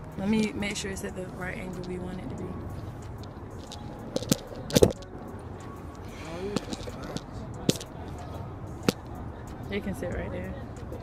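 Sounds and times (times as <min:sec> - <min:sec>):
selfie stick clicks and knocks: 0:03.1 - 0:05.2, 0:06.6 - 0:07.9.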